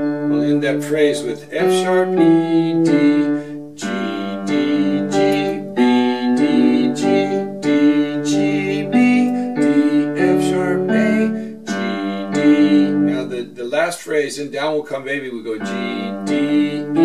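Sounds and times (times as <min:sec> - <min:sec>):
electronic keyboard piano notes: 0:00.0 - 0:13.9, 0:15.5 - 0:17.0.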